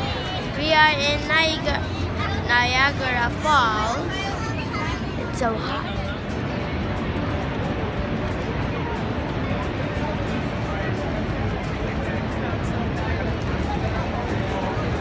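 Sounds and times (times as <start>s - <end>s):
crowd babble: 0.0s - 15.0s.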